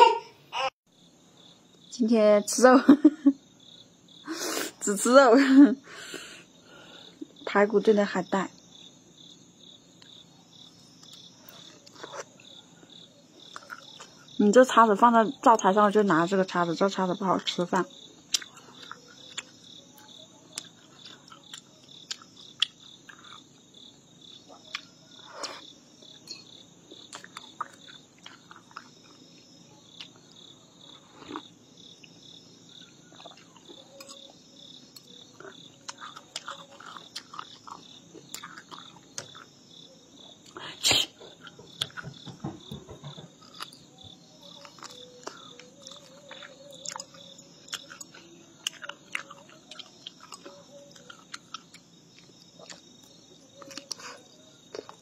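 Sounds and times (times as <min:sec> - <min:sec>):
insect chirping: 0:00.0 - 0:55.0
person chewing food: 0:11.0 - 0:14.4, 0:18.2 - 0:40.6, 0:41.2 - 0:55.0.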